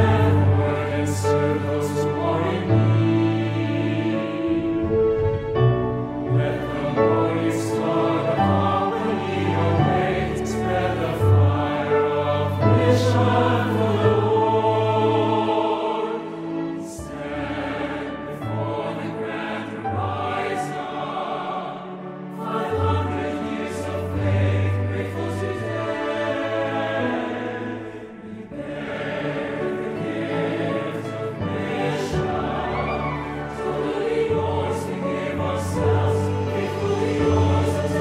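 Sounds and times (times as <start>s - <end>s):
choir singing a devotional song: 0.0s - 38.0s.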